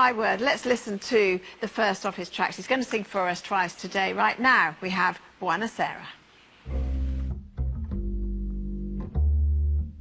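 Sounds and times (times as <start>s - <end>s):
acoustic guitar chords: 6.7s - 10.0s
plucked double bass: 6.7s - 10.0s.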